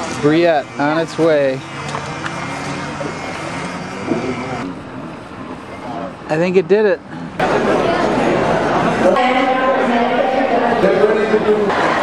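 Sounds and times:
outdoor background noise: 0.0 - 12.0
faint indistinct voices: 7.0 - 12.0.

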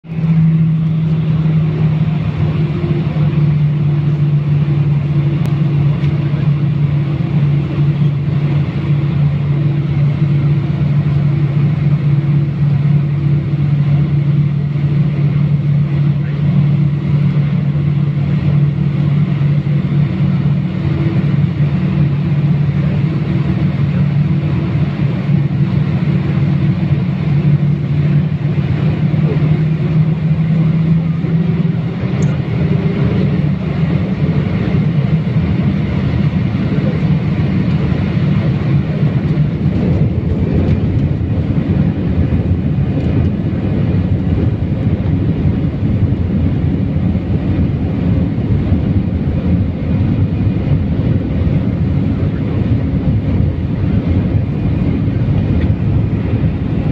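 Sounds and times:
jet cabin engine drone: 0.0 - 56.9.

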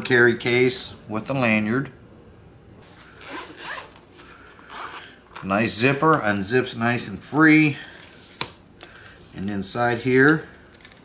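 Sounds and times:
zipper unzipping: 3.2 - 4.0.

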